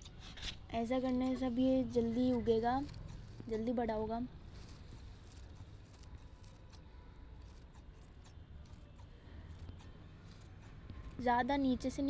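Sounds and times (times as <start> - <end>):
scissors snipping leaves: 0.0 - 12.0.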